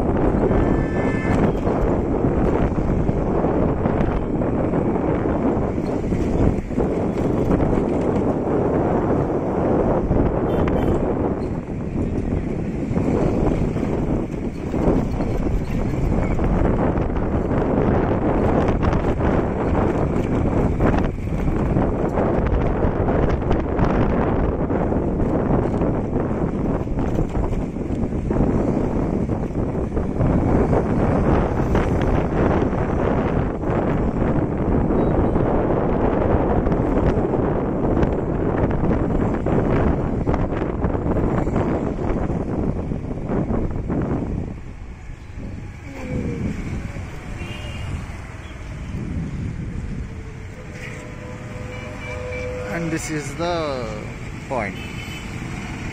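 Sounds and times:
wind buffeting microphone: 0.0 - 55.9.

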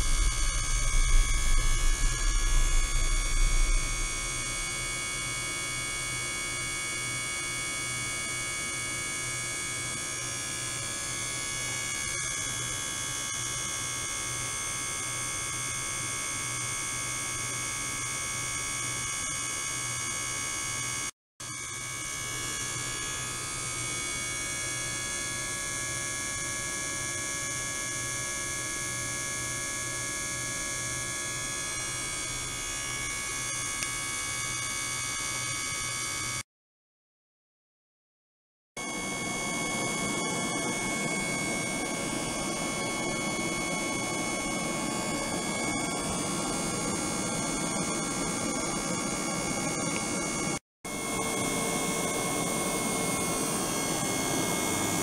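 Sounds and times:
high whining tones: 0.0 - 7.7, 38.8 - 55.0
electrical buzz and hum: 0.0 - 36.4, 38.8 - 55.0.

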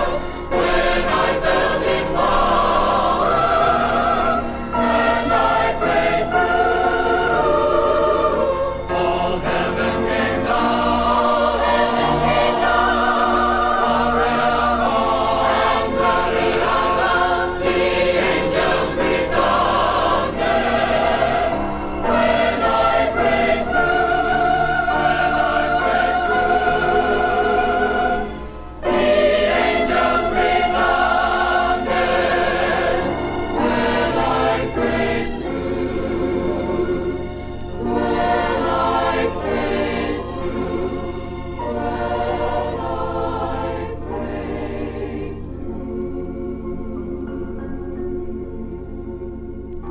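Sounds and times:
choir singing gospel: 0.0 - 48.5.

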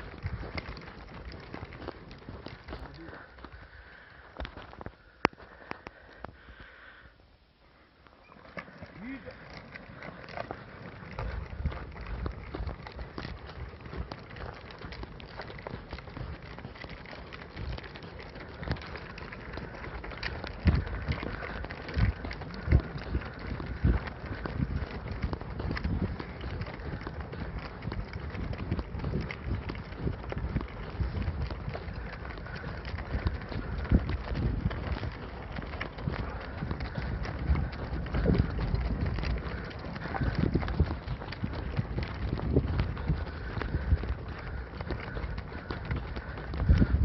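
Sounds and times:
horses trotting on snow: 0.0 - 47.0
steady low rumbling: 9.0 - 47.0.

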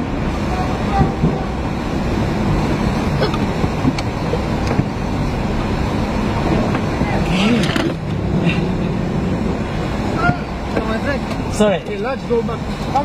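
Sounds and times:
low engine rumble: 0.0 - 13.0.

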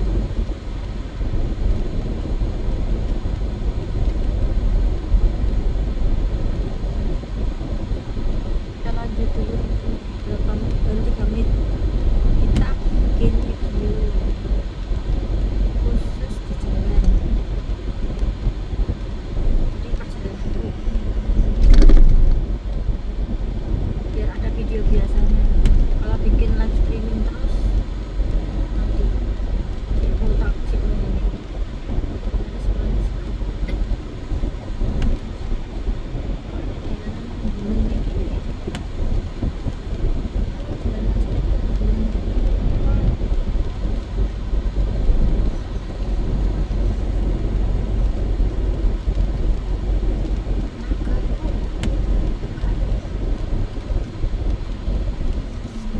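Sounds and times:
road and engine rumble: 0.0 - 55.9.

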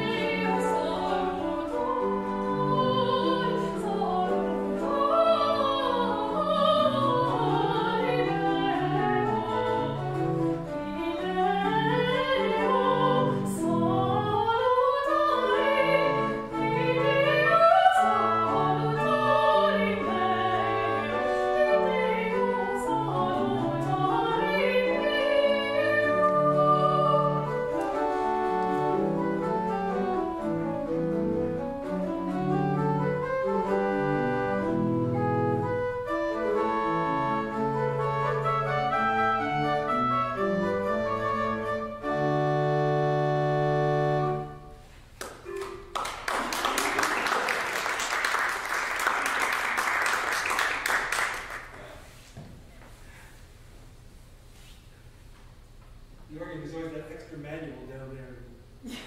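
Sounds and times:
woman singing classical music: 0.0 - 44.9
pipe organ: 27.4 - 44.8
audience applauding: 45.2 - 52.1.

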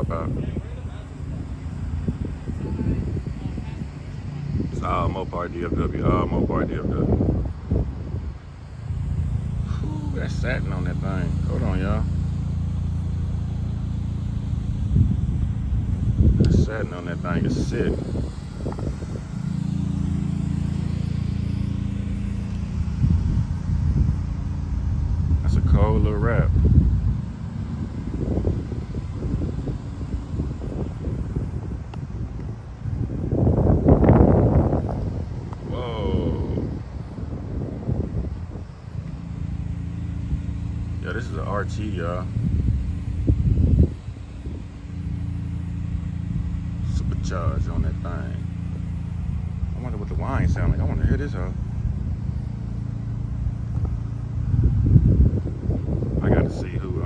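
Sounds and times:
car engine idling: 0.0 - 57.0
steady low hum: 0.0 - 57.0
uneven low engine rumble: 0.0 - 57.0
wind buffeting microphone: 0.0 - 57.0.

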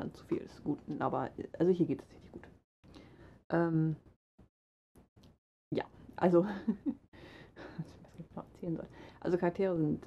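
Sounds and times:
woman speaking: 0.0 - 2.4, 3.5 - 4.1, 5.7 - 6.7, 8.0 - 10.0.

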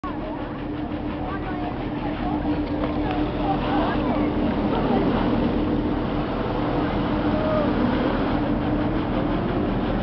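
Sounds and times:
crowd voices: 0.0 - 10.0
ride machinery hum: 0.0 - 10.0.

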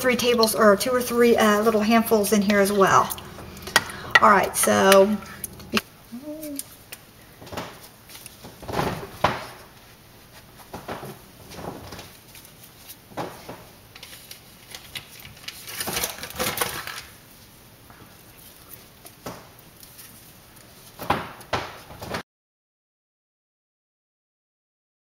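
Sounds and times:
kitchen utensils knocking and clinking: 0.1 - 5.8.

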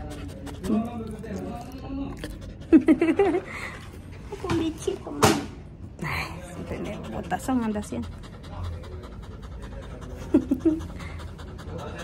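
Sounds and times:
dog panting: 0.0 - 3.9, 6.4 - 12.0.

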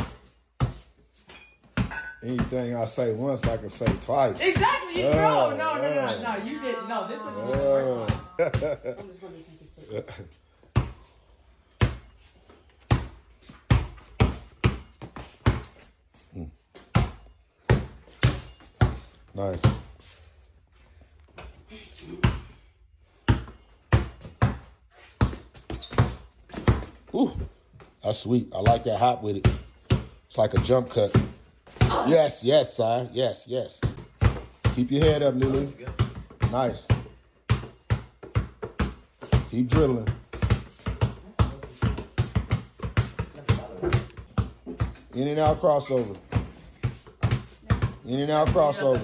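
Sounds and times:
basketball bouncing on concrete: 0.0 - 5.5, 7.4 - 9.2, 10.6 - 11.1, 11.7 - 15.9, 16.7 - 20.1, 21.3 - 32.1, 33.7 - 49.0.

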